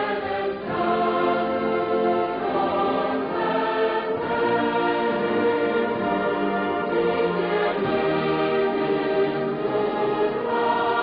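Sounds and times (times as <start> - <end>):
choir singing held notes: 0.0 - 11.0
instrumental accompaniment: 0.0 - 11.0.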